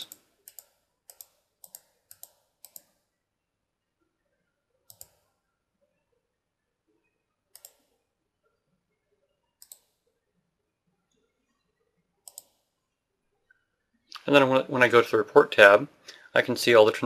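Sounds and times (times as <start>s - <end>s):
faint mouse clicks: 0.0s - 3.0s, 4.8s - 5.3s, 7.5s - 8.0s, 9.6s - 10.0s, 12.2s - 12.7s.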